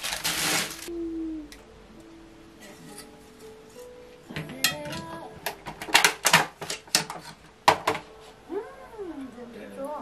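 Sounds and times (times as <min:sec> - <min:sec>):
packaging crinkling: 0:00.0 - 0:00.9.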